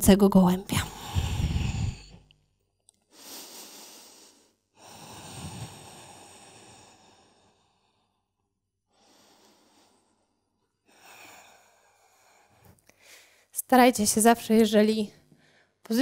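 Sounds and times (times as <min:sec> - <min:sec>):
person breathing deeply: 0:00.8 - 0:02.3, 0:03.1 - 0:13.5.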